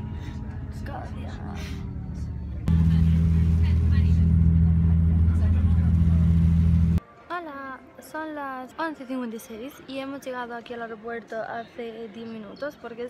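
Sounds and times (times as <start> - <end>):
train hum and rumble: 2.7 - 7.0.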